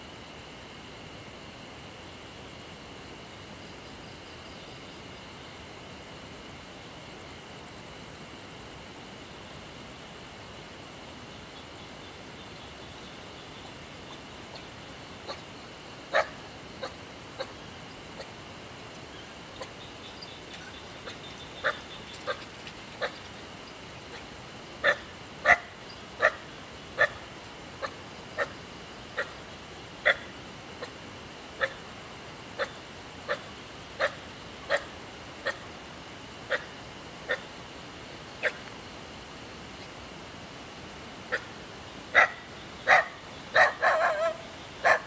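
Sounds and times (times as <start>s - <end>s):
animal calling in sharp calls: 42.1s - 45.0s.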